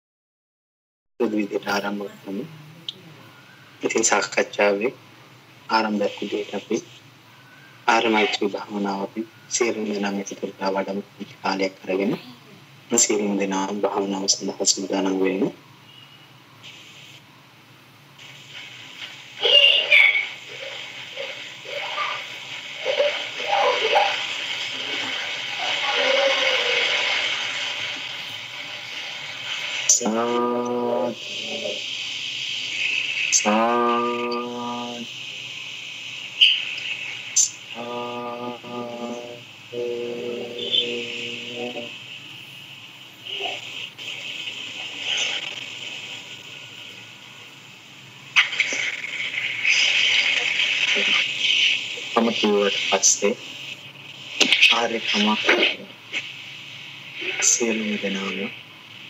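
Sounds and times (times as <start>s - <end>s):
constant hiss: 1.2s - 59.0s
person chanting slowly: 1.7s - 3.3s, 30.0s - 31.8s, 33.5s - 35.1s, 37.8s - 42.0s.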